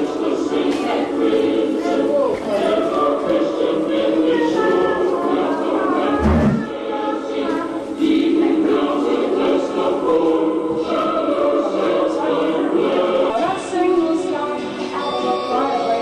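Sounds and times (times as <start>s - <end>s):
choir singing with music: 0.0s - 16.0s.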